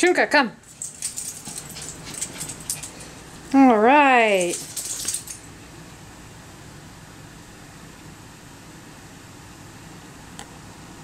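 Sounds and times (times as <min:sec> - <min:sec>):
dog paws clicking on floor: 0:00.6 - 0:05.5.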